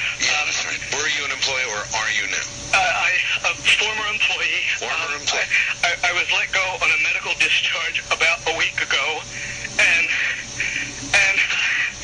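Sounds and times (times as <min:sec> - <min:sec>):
person talking over radio: 0:00.1 - 0:12.0.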